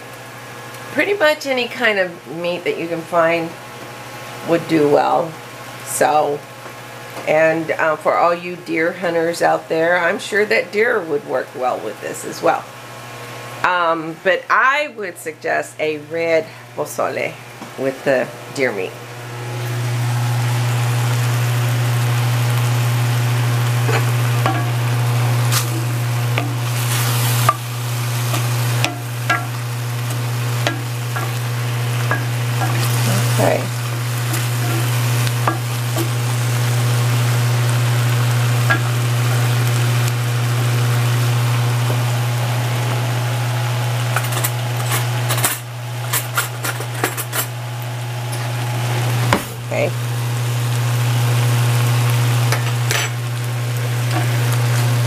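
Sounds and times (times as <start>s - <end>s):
steady low hum: 11.2s - 55.0s
meat sizzling in a pan: 19.2s - 55.0s
wooden spoon scraping a pan: 25.5s - 36.2s.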